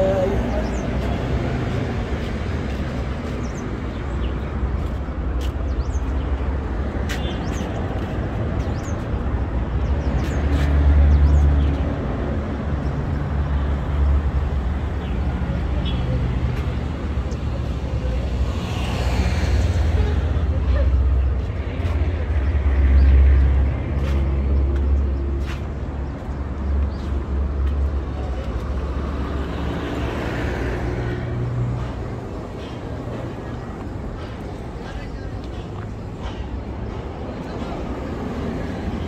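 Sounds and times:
faint voices: 0:00.0 - 0:03.6, 0:31.4 - 0:39.0
low traffic rumble: 0:00.0 - 0:39.0.

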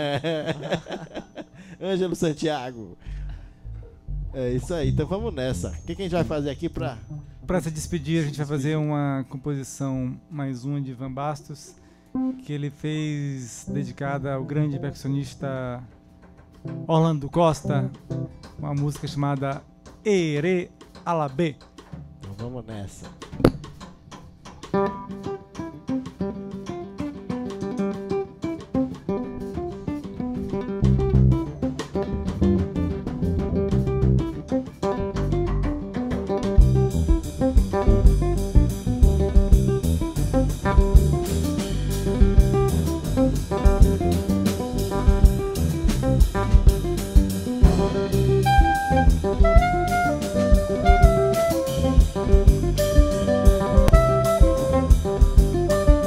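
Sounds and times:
drum kit: 0:00.0 - 0:01.6, 0:03.2 - 0:08.7, 0:15.0 - 0:56.0
bass: 0:00.0 - 0:11.5, 0:13.6 - 0:56.0
guitar: 0:00.0 - 0:56.0
cymbals: 0:46.3 - 0:56.0
wind instrument melody: 0:47.8 - 0:56.0.

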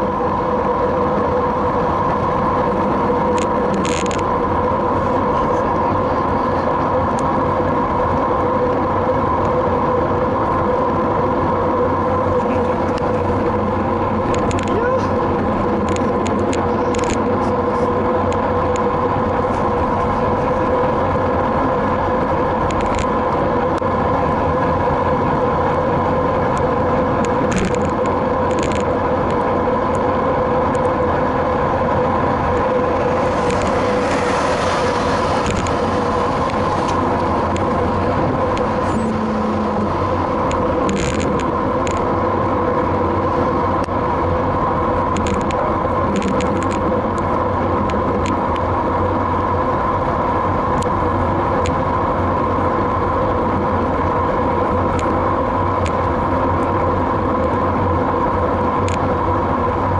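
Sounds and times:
bicycle road noise: 0:00.0 - 0:59.9
constant hum: 0:00.0 - 0:59.9
wind rushing: 0:29.0 - 0:44.3.

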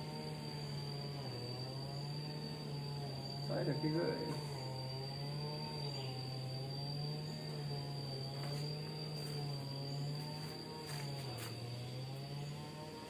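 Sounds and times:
thin high whine: 0:00.0 - 0:11.8
wavering steady hum: 0:00.0 - 0:13.0.

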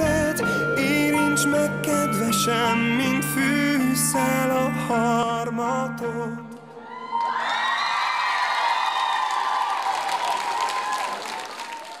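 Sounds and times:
audience screaming and cheering: 0:06.7 - 0:12.0
scattered clapping: 0:09.2 - 0:12.0.

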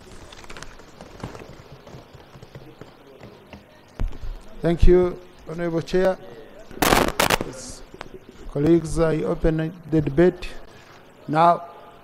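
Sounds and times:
papers and objects tapping and rustling: 0:00.0 - 0:04.5.

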